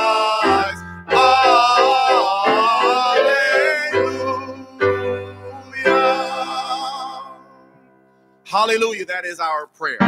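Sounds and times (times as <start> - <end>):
man singing drawn-out note: 0.0 - 7.7.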